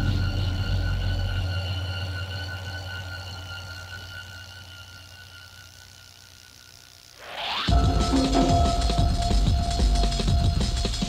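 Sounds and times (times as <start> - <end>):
electronic music without drums: 0.0 - 11.0.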